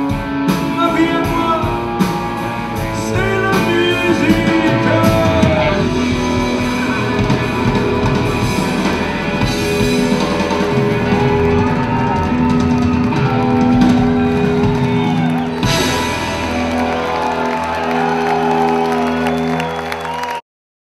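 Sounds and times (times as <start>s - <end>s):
rock band with electric guitar: 0.0s - 20.4s.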